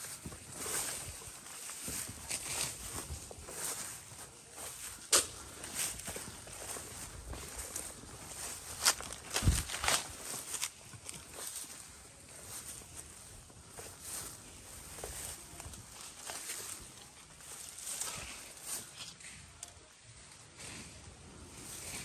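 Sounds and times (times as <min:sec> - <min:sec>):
footsteps through tall grass: 0:00.0 - 0:22.0.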